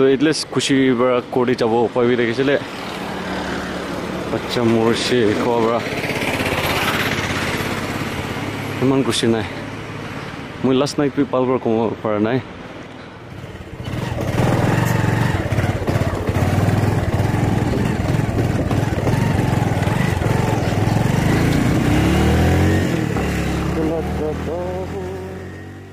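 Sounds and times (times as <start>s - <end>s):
motorcycle engine running: 4.0s - 8.8s, 13.3s - 25.9s.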